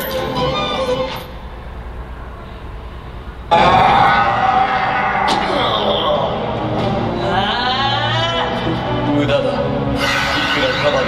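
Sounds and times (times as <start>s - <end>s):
video soundtrack over loudspeakers: 0.0s - 11.0s
low hum: 1.2s - 11.0s.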